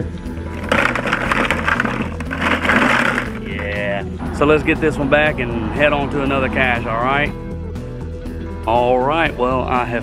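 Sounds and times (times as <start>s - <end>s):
plastic canisters clattering in bucket: 0.4s - 3.9s.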